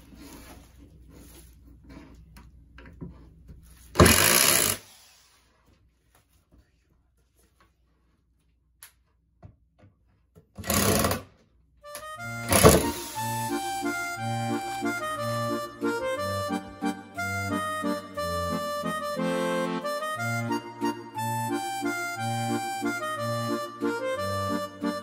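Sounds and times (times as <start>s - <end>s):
electric driver driving screws: 4.0s - 4.8s, 10.6s - 11.3s
background music: 11.8s - 25.0s.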